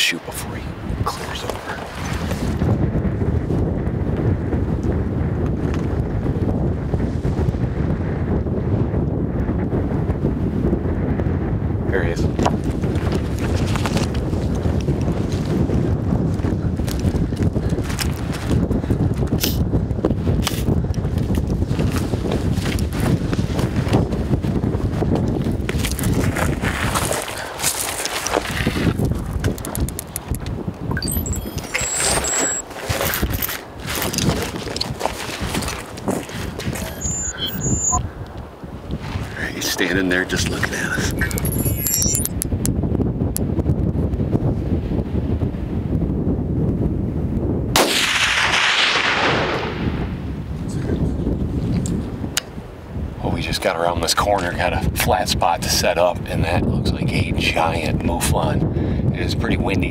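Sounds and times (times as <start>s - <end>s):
wind buffeting microphone: 0.0s - 59.9s
footsteps on rocky ground: 16.4s - 19.3s, 21.2s - 30.5s, 32.6s - 36.8s.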